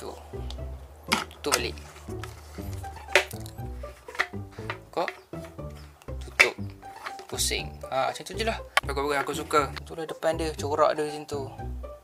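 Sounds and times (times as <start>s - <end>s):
background music melody: 0.0s - 12.0s.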